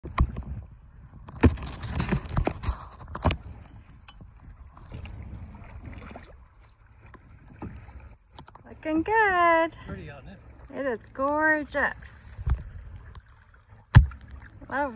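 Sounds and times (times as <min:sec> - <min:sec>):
paddle dipping in water: 0:00.0 - 0:14.9
water lapping: 0:00.0 - 0:14.9
water splashing: 0:00.0 - 0:14.9.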